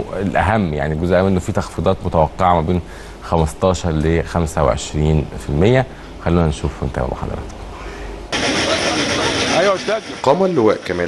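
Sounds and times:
street traffic: 7.5s - 11.0s
people's voices: 8.4s - 11.0s.

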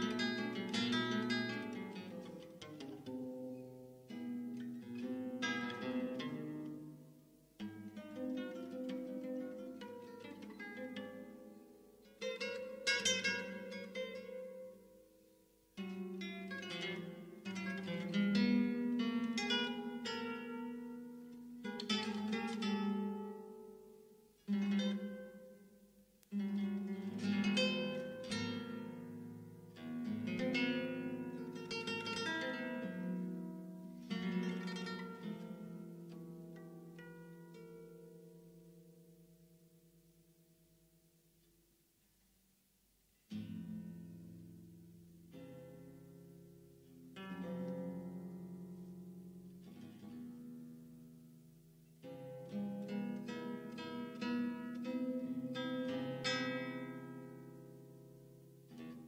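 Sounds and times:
classical guitar playing: 0.0s - 42.4s, 43.0s - 59.0s.

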